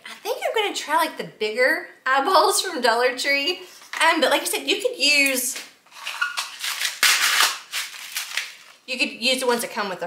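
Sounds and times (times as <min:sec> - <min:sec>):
plastic crackling: 0:05.5 - 0:08.9.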